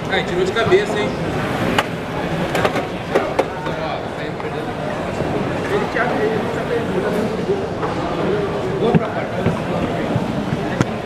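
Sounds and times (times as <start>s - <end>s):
background voices and bustle: 0.0s - 11.0s.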